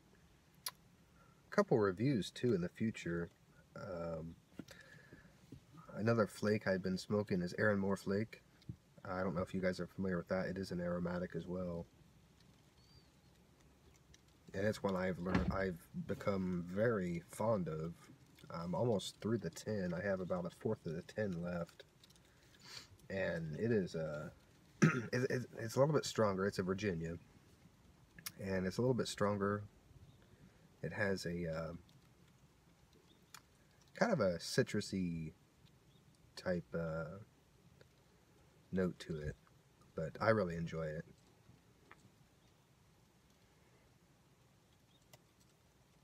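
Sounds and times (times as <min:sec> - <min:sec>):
faint high bird chirp: 0:12.7 - 0:13.3
faint low rumble: 0:14.3 - 0:22.3, 0:23.0 - 0:33.0.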